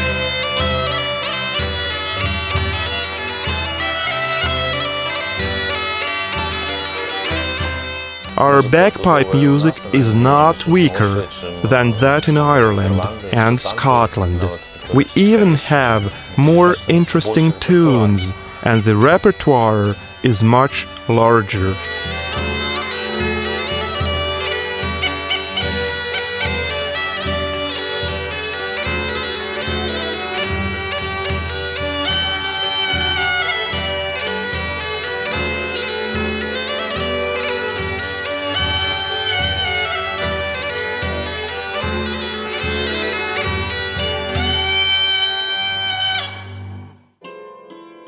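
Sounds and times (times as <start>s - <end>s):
bagpipe playing folk tune: 0.0s - 47.1s
violin: 0.0s - 47.8s.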